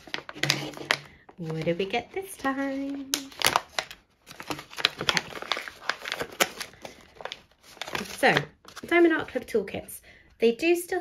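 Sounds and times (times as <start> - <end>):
packaging pouch crinkling: 0.0 - 8.9.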